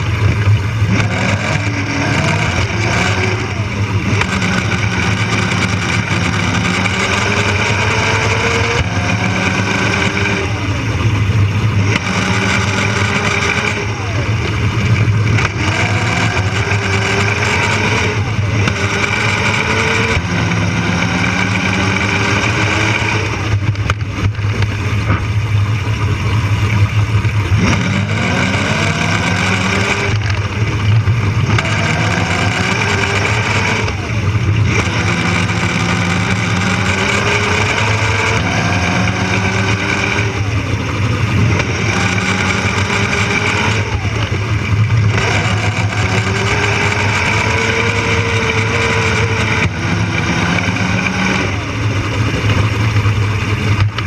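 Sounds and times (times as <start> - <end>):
electric motor whining: 0.0 - 25.3, 27.4 - 52.8.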